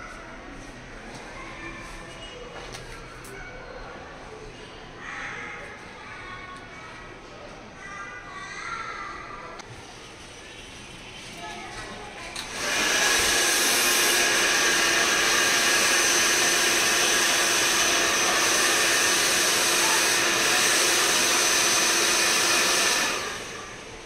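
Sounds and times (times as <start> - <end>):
hair dryer blowing: 12.4 - 24.0.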